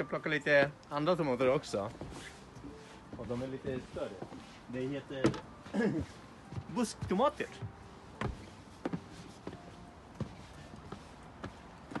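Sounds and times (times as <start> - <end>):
footsteps on wooden boards: 1.8 - 12.0.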